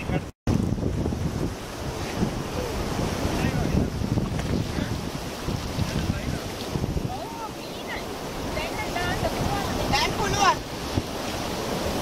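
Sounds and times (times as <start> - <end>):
small waves in shallow water: 0.0 - 12.0
wind buffeting microphone: 0.0 - 12.0.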